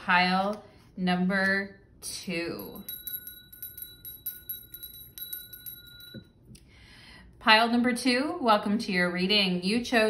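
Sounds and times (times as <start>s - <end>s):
hand bell ringing: 2.5s - 6.4s.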